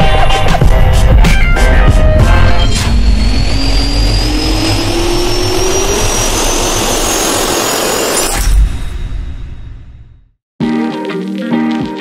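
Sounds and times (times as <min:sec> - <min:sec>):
rising whoosh riser effect: 0:00.8 - 0:10.1.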